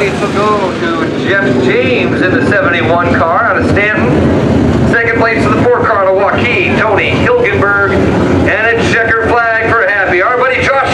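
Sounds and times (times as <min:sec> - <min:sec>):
race car engines: 0:00.0 - 0:10.9
announcer over loudspeakers: 0:04.9 - 0:10.9.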